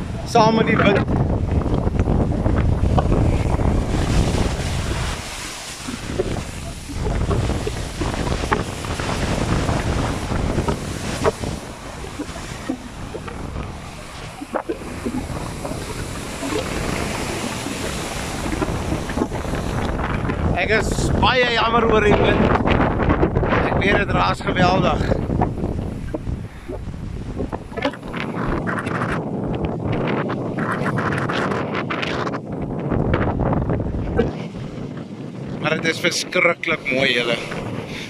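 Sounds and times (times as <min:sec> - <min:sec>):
surf breaking around pilings: 0:00.0 - 0:38.0
wind buffeting microphone: 0:00.0 - 0:38.0.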